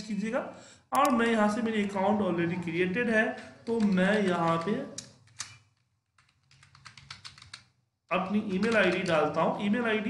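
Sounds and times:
typing on a keyboard: 3.6 - 7.8, 8.6 - 9.4.

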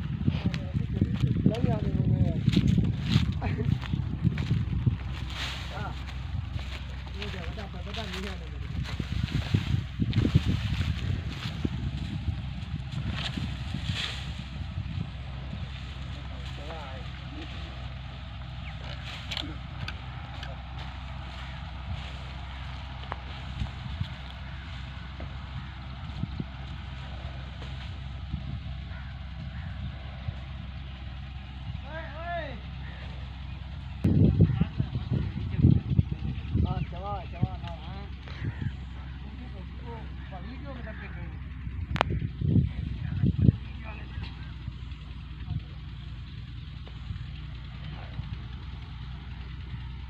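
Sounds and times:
tractor diesel engine idling: 0.0 - 50.0.

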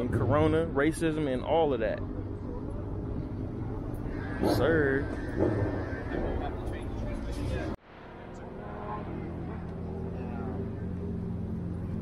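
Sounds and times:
outdoor chatter: 0.0 - 12.0
car engine idling: 2.1 - 12.0.

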